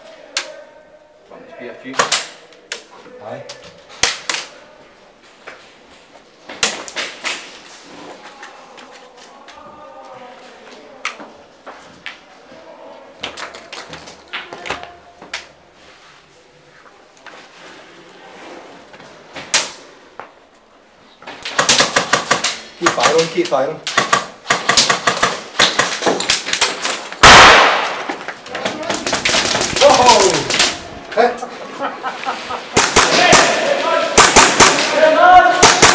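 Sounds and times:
muffled voices: 7.8 - 15.6, 28.4 - 35.9
airsoft guns firing: 21.4 - 30.9, 32.7 - 35.9.

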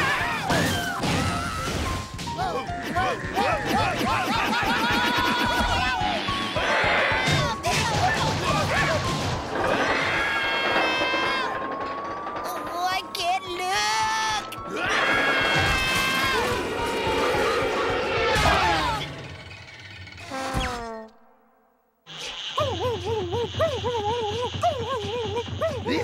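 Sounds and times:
characters yelling and shrieking: 0.0 - 9.0, 13.0 - 19.3
busy cartoon music: 0.0 - 19.6.

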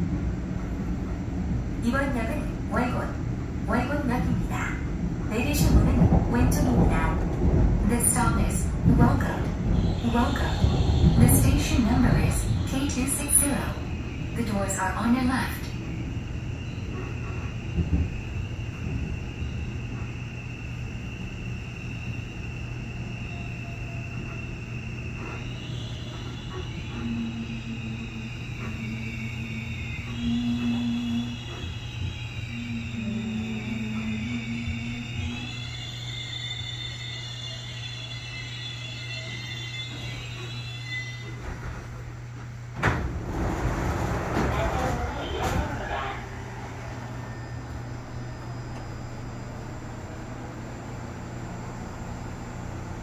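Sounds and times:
constant low hum: 0.0 - 53.0
train doors opening: 0.0 - 53.0
electric train motors whining: 9.1 - 53.0.

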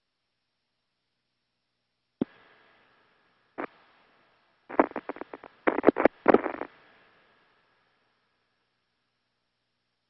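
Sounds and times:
faint steady hiss: 0.0 - 10.0
radio static crackles: 3.6 - 3.8, 4.7 - 6.8.

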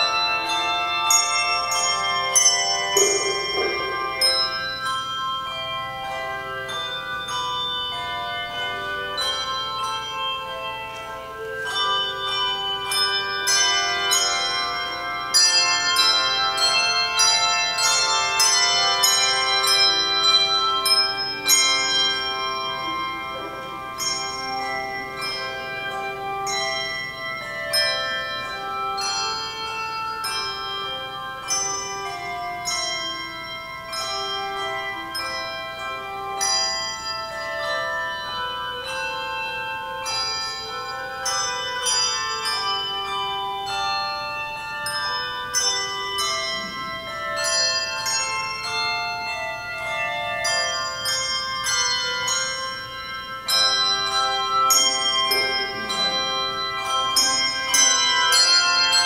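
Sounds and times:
tuned bells playing a melody: 0.0 - 59.0.

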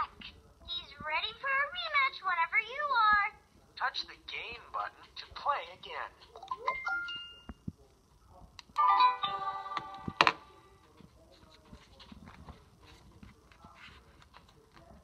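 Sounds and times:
faint handling noise: 9.8 - 15.0.

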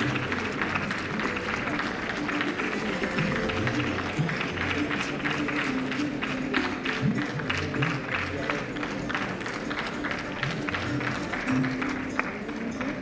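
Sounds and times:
audience applause: 0.0 - 13.0
background music: 0.0 - 13.0.

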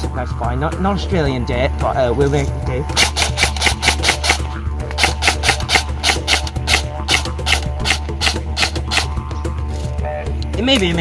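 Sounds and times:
background music: 0.0 - 11.0
airsoft rifle shots: 3.0 - 9.2.

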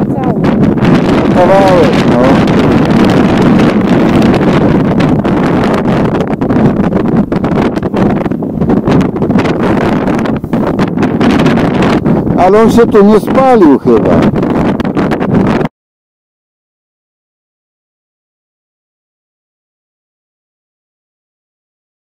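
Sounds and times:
person's voice: 0.0 - 0.5, 1.3 - 2.4, 12.4 - 14.3
wind buffeting microphone: 0.0 - 15.7.

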